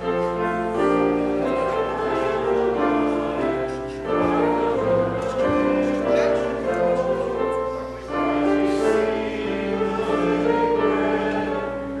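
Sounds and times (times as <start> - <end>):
congregation singing: 0.0 - 12.0
hymn on keyboard: 0.0 - 12.0.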